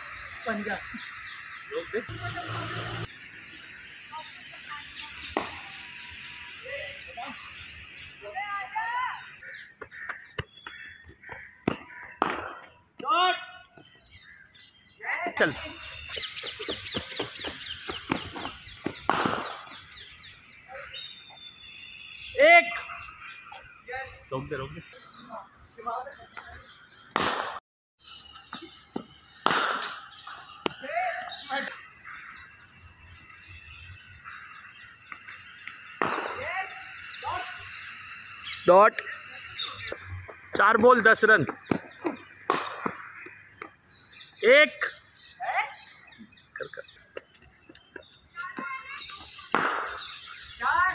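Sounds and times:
birds chirping: 0.0s - 27.3s, 28.0s - 50.9s
cricket bat striking ball: 11.6s - 12.7s, 18.1s - 19.8s, 36.0s - 36.4s, 41.6s - 43.0s, 49.5s - 50.1s.

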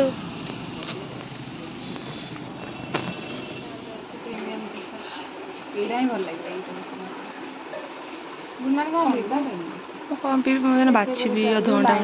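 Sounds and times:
faint voices: 0.0s - 12.0s
road traffic: 0.0s - 12.0s.

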